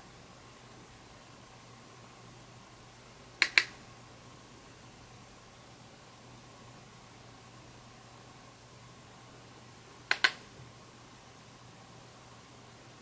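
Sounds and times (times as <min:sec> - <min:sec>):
faint room hiss: 0:00.0 - 0:13.0
sharp clicks: 0:03.4 - 0:03.8, 0:10.1 - 0:10.4.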